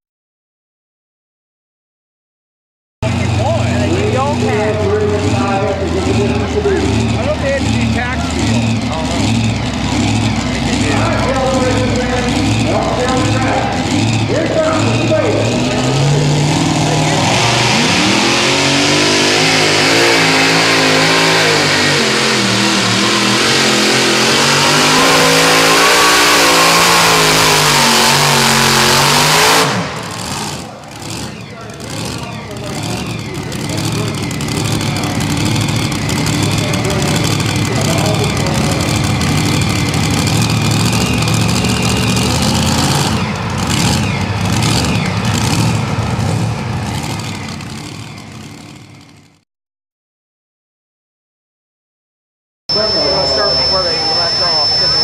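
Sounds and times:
tractor engine at full throttle: 3.0 - 49.4, 52.7 - 55.0.

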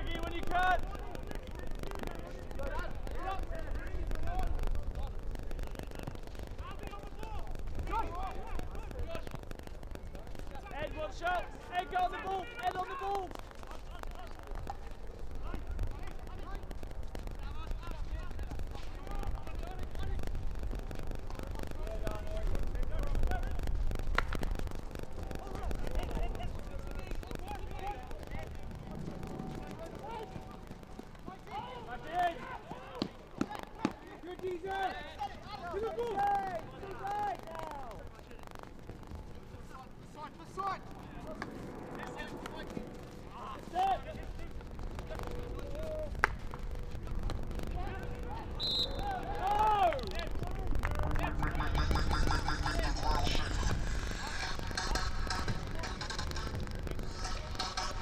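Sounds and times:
players shouting: 25.2 - 38.0, 47.3 - 56.5.

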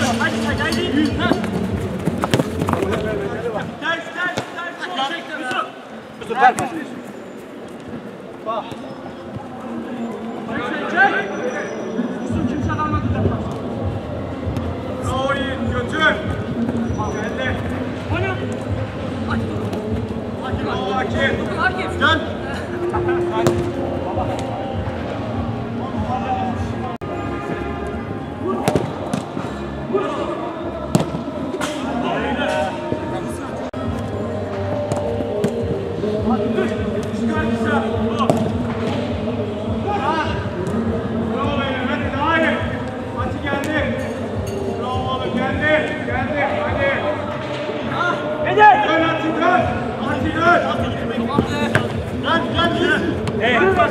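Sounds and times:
players calling and shouting: 0.0 - 53.9.

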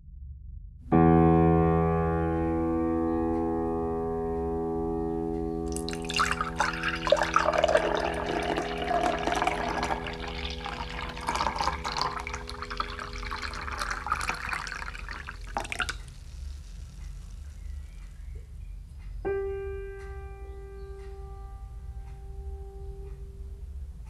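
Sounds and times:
milk pouring into glass: 5.7 - 16.2.

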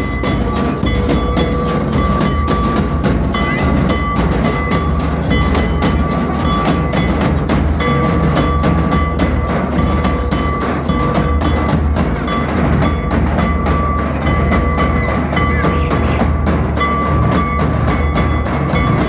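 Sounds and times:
drums beaten fast: 0.0 - 19.0
wind instrument high notes: 14.2 - 16.6.

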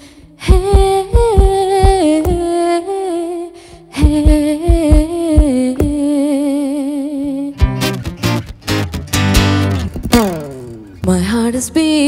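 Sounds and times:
woman singing with vibrato: 0.0 - 7.6, 11.0 - 12.0
strummed acoustic guitar chords: 7.6 - 11.0
plucked acoustic guitar: 7.6 - 11.2.

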